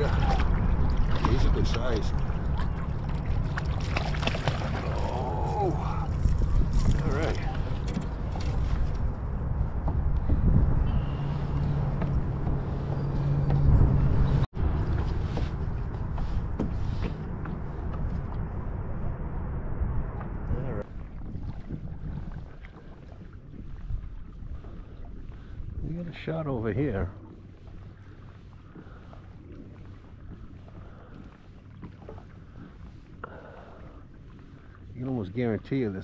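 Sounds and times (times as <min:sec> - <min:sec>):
wind buffeting microphone: 0:00.0 - 0:35.5.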